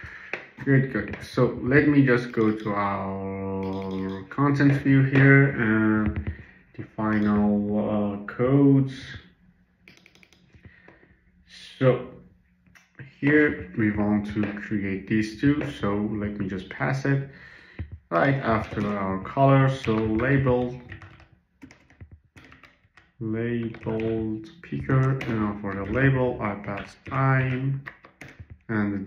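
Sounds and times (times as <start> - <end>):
keyboard keys clicking: 1.0 - 5.3, 9.9 - 11.0, 17.7 - 28.7.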